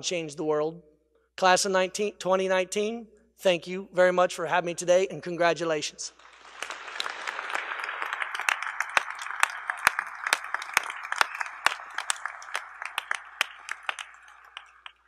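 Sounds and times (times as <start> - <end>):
audience applauding: 6.1 - 15.0
nearby sharp hand claps: 6.2 - 15.0.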